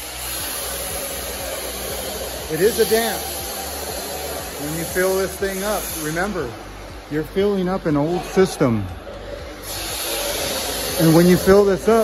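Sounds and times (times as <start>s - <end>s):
air and water rushing through pipes: 0.0s - 8.1s, 8.9s - 12.0s.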